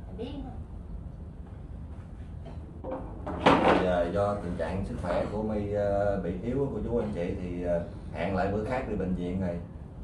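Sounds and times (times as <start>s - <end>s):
low steady hum: 0.0s - 10.0s
sharp knock: 2.8s - 4.0s.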